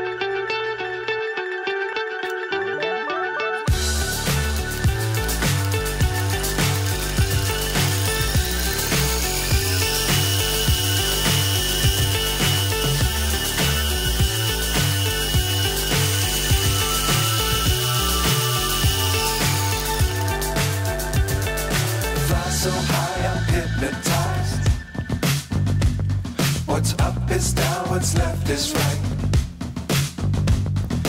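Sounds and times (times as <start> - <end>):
background music with beat: 0.0 - 31.0
electric motor whining: 3.7 - 24.6.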